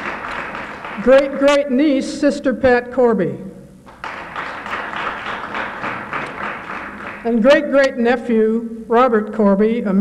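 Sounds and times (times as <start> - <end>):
audience applause: 0.0 - 1.6, 3.9 - 7.4.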